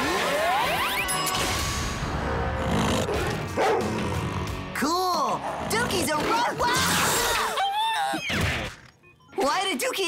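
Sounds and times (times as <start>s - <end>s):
background music: 0.0s - 7.6s.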